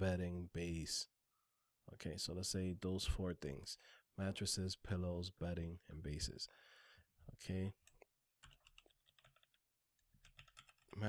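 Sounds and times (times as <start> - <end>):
typing on computer keyboard: 8.4 - 11.0.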